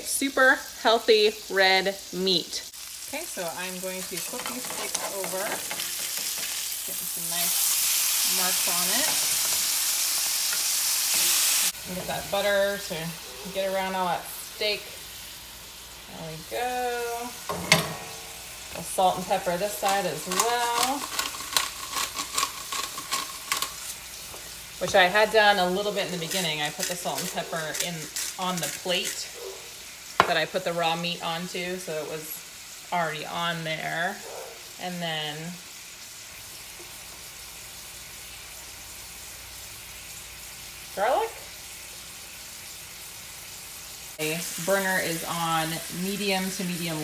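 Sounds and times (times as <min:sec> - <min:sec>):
steaks sizzling in skillet: 0:00.0 - 0:47.0
spice grinder crunching: 0:19.2 - 0:24.5, 0:25.9 - 0:29.2.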